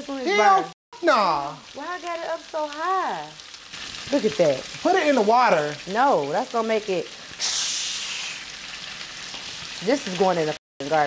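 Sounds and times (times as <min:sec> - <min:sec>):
loud hiss of steam: 0:07.4 - 0:08.5.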